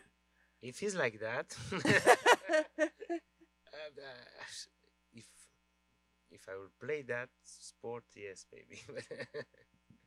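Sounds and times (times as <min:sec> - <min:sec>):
electrical mains hum: 0:00.0 - 0:10.0
man speaking hesitantly: 0:03.8 - 0:05.4.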